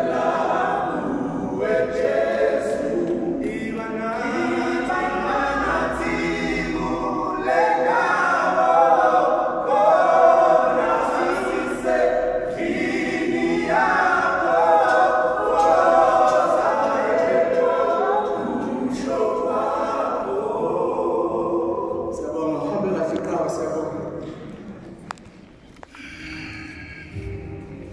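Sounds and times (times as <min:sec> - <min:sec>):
men singing a cappella: 0:00.0 - 0:22.4.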